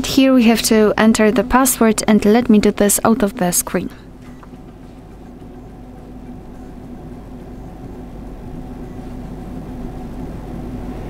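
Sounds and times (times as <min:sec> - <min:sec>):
soft noise haze: 0:00.0 - 0:11.0
steady low hum: 0:00.0 - 0:11.0.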